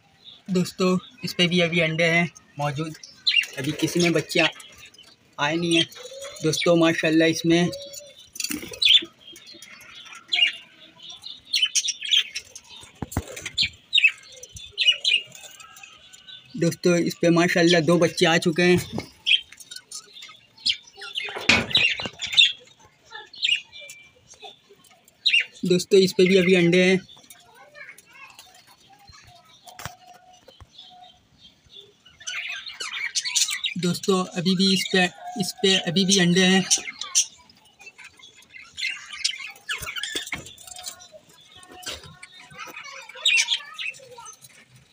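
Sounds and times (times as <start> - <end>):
budgerigars chirping: 0.3 - 27.6, 29.0 - 44.9.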